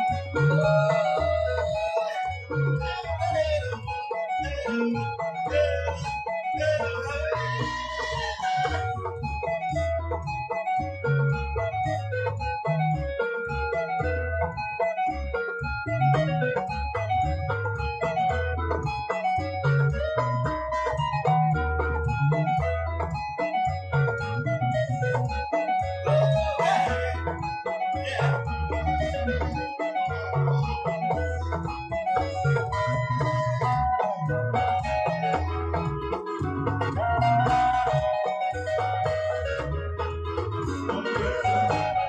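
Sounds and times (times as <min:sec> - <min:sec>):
electric bass line: 0:00.0 - 0:42.0
electric guitar melody: 0:00.0 - 0:42.0.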